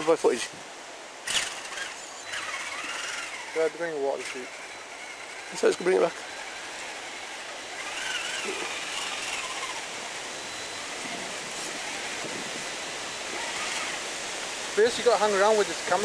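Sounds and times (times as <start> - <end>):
stream water rushing: 0.0 - 16.0.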